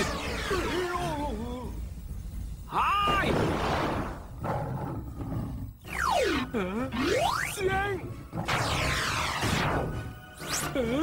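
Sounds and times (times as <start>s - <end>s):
low background layer: 0.0s - 11.0s.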